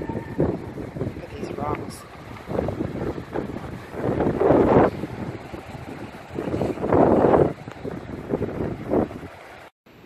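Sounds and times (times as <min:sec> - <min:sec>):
wind buffeting microphone: 0:00.0 - 0:09.7
sea surf on rocks: 0:00.0 - 0:10.0.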